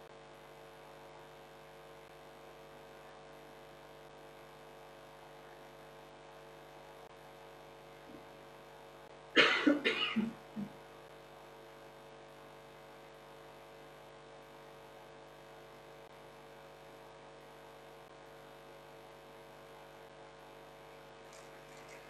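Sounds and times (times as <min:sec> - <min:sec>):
faint electrical hum: 0:00.0 - 0:22.0
person coughing: 0:09.4 - 0:10.7.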